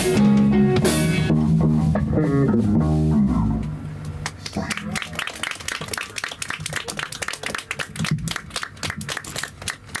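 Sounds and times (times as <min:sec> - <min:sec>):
small group clapping: 0:04.2 - 0:10.0.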